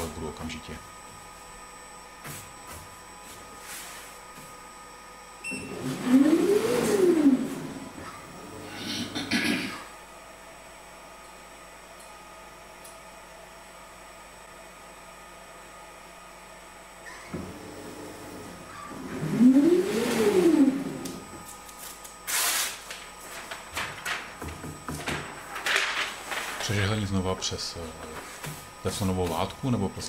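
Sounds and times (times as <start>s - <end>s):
heat press humming: 0.0s - 9.9s, 16.5s - 30.0s
servo motor whine: 5.6s - 9.0s, 17.0s - 21.4s.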